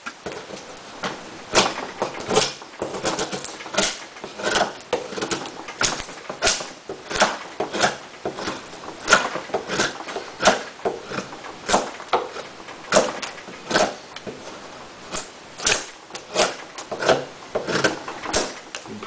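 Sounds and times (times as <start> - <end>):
knife shaving wood: 1.5 - 18.9.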